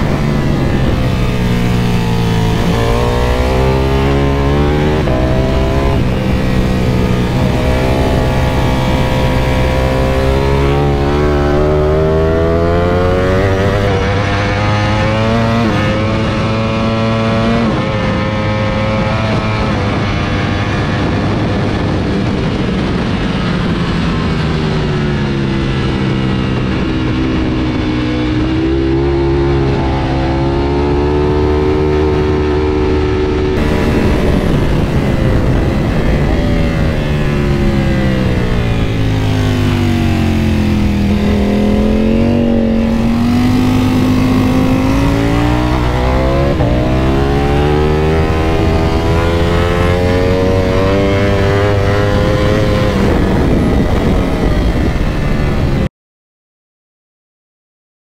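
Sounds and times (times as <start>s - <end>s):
motorcycle engine at speed: 0.0s - 55.9s
wind rush: 0.0s - 55.9s.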